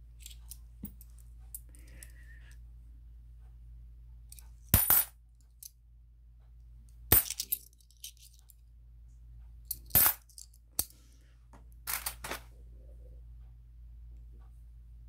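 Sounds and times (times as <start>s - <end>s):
coins clinking: 4.8s - 5.1s, 7.1s - 8.4s, 9.7s - 10.5s, 11.9s - 12.4s.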